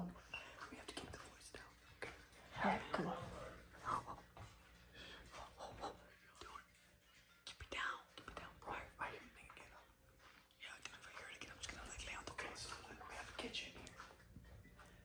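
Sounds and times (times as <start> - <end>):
young man whispering: 0.0 - 3.0, 5.2 - 6.8, 7.4 - 14.1.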